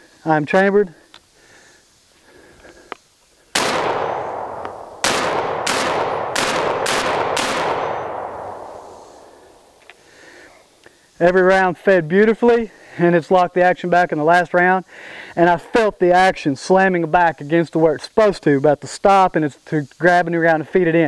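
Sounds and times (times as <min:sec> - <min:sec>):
shotgun shots echoing: 0:03.5 - 0:09.8.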